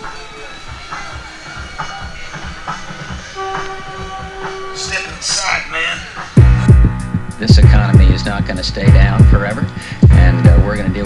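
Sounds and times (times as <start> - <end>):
steady horn-like tone: 3.3 - 7.5
low rhythmic rumble: 3.4 - 11.0
man's voice: 4.8 - 6.8, 7.4 - 11.0.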